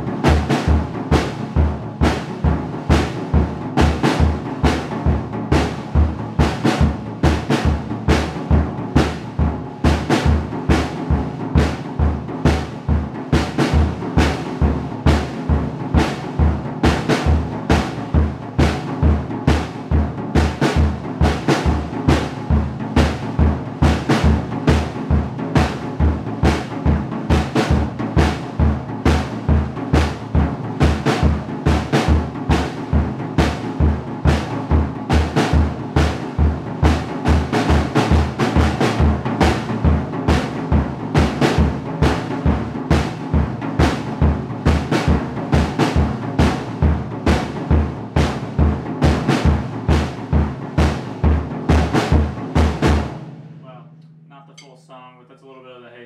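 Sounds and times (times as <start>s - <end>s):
drum kit groove: 0.0s - 55.3s.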